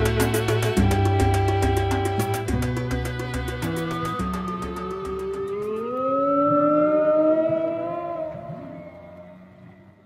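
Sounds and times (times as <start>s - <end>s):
long tones sliding upward: 3.8s - 10.0s.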